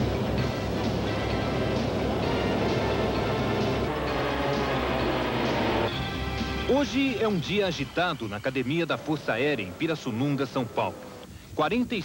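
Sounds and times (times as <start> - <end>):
propeller aircraft engines droning: 0.0 - 12.0.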